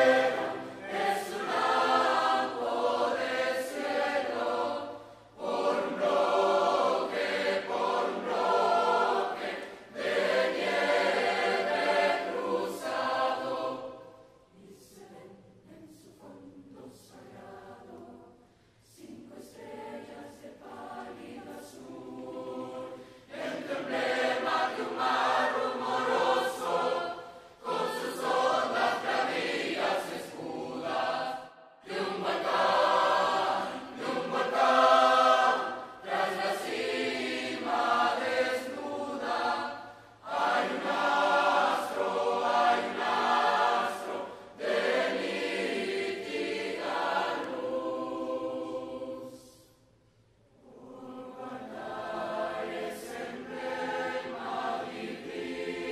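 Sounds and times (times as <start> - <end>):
mixed choir singing: 0.0 - 55.9.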